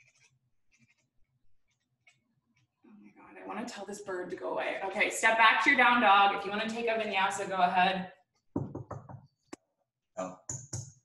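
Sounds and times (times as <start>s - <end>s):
knuckles knocking on window: 8.6s - 9.3s.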